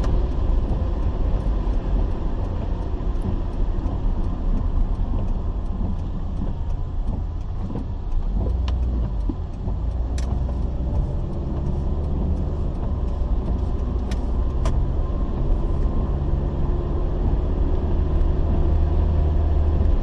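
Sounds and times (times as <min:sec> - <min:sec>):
car engine and road rumble: 0:00.0 - 0:20.0
sharp clicks: 0:02.5 - 0:16.0.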